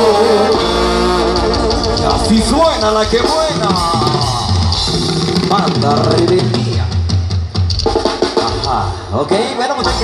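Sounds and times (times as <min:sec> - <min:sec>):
low tuba bass notes: 0:00.0 - 0:05.1
live brass band music: 0:00.0 - 0:07.0, 0:07.9 - 0:10.0
person's voice: 0:01.9 - 0:06.9, 0:08.4 - 0:10.0.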